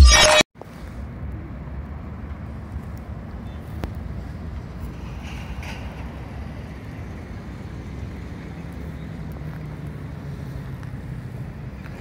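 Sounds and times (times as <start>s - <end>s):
road traffic rumble: 0.6s - 12.0s.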